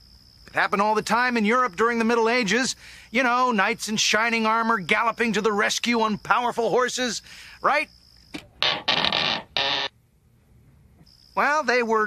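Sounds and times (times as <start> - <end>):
metallic visor scrape: 8.4 - 9.9.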